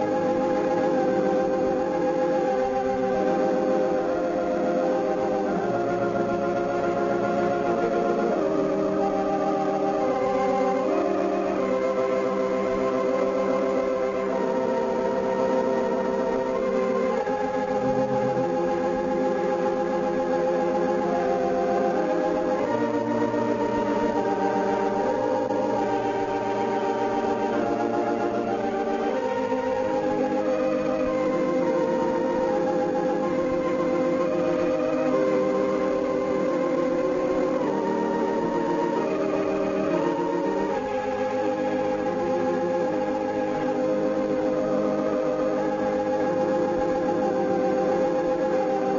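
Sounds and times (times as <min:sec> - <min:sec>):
organ playing held chords: 0:00.0 - 0:48.9.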